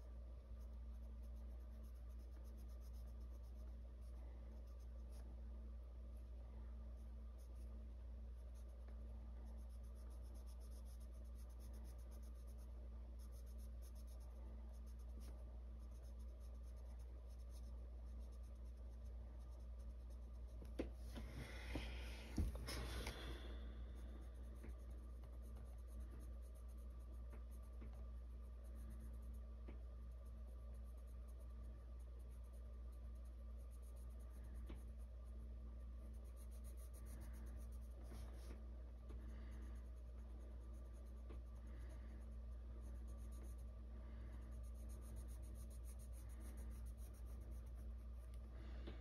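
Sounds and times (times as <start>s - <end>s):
steady low hum: 0.0s - 49.0s
pencil scratching on paper: 0.6s - 5.3s, 6.9s - 20.8s, 21.4s - 35.1s, 36.0s - 38.6s, 39.2s - 48.4s.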